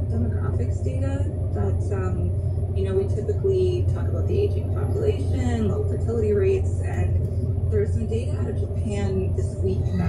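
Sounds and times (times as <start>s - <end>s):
car cabin road and engine drone: 0.0s - 10.0s.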